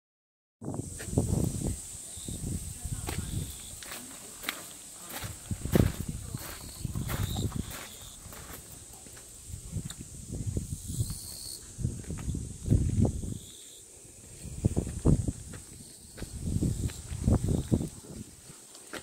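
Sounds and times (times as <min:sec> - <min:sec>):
footsteps on concrete: 0:02.9 - 0:10.0, 0:12.0 - 0:13.1, 0:14.4 - 0:19.0.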